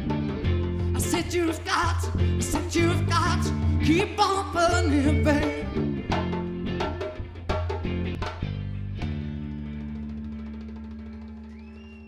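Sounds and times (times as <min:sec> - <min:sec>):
thin high whistle: 0:11.5 - 0:12.0.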